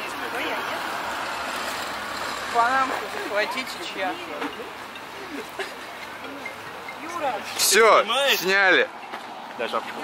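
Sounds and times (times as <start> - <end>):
road vehicle noise: 0.0 - 10.0.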